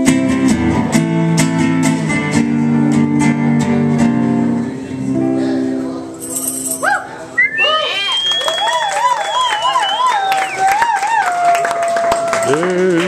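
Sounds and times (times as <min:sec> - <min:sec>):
tambourine shake: 0:06.2 - 0:06.9
audience cheering and whooping: 0:06.8 - 0:13.0
long high whistle: 0:07.4 - 0:10.8
audience clapping: 0:08.0 - 0:13.0.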